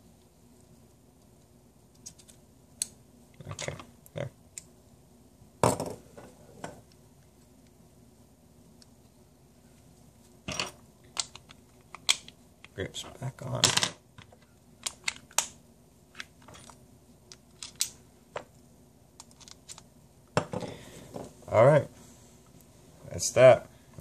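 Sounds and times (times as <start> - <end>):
metal parts clicking and clinking: 16.4 - 16.8, 17.5 - 18.0, 19.2 - 19.8.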